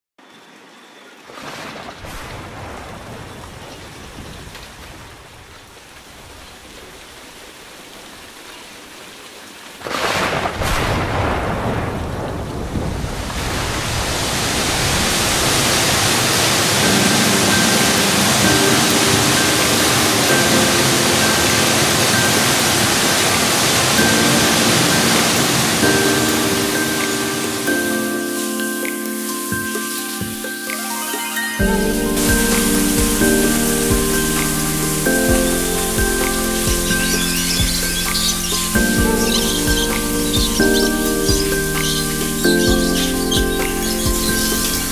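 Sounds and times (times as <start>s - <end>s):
heavy rain: 0.4s - 44.9s
thunderclap: 9.8s - 17.7s
soft sustained music tones: 15.2s - 44.9s.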